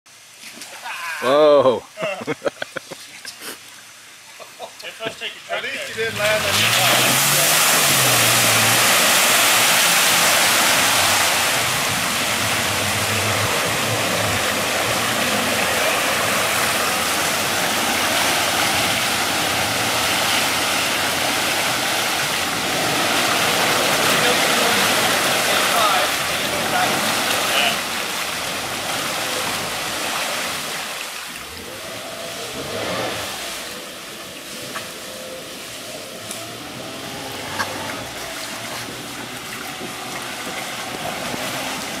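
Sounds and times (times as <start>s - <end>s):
car wheels spinning in mud: 5.9s - 42.0s
muddy water churning: 5.9s - 42.0s.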